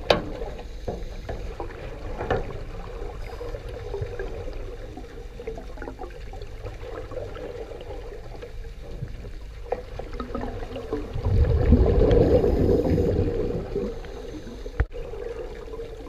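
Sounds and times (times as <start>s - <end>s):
churning water: 0.0s - 16.0s
underwater low rumble: 0.0s - 16.0s.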